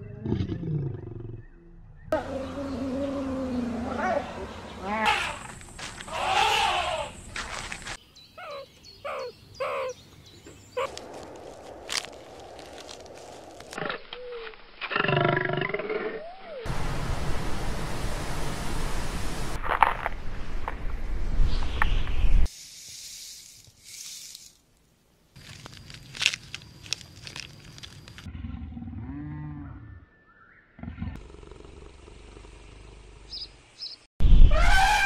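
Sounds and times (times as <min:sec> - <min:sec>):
cheetahs chirping: 0:08.2 - 0:11.3
animal call rising and falling: 0:34.4 - 0:35.0.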